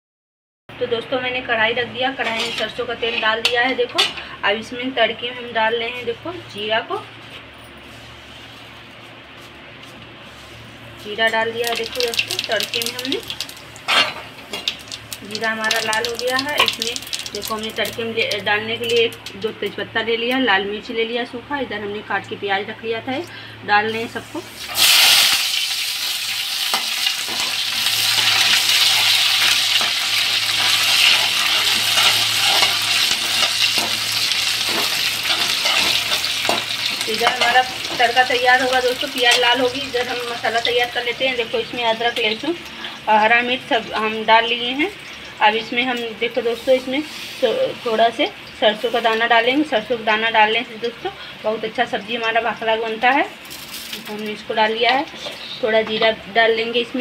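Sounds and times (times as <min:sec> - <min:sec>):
metal spatula scraping a pan: 0:02.2 - 0:03.3, 0:26.7 - 0:38.1
onions sizzling in hot oil: 0:11.2 - 0:19.2, 0:24.0 - 0:51.0
gas burner hissing: 0:23.3 - 0:43.1.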